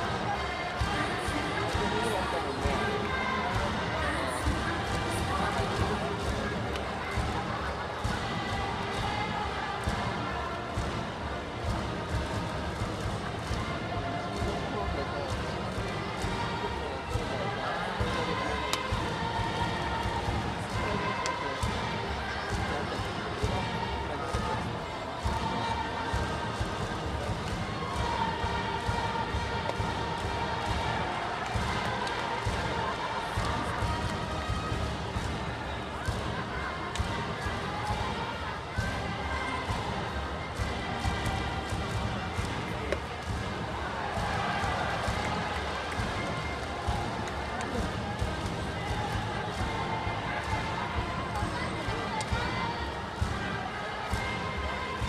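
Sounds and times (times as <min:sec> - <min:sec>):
steady drum beat: 0:00.0 - 0:14.7, 0:15.3 - 0:55.0
crowd chanting: 0:00.0 - 0:55.0.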